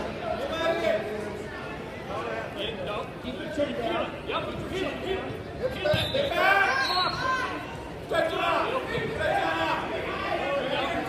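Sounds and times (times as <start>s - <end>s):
people shouting and talking: 0.0s - 11.0s.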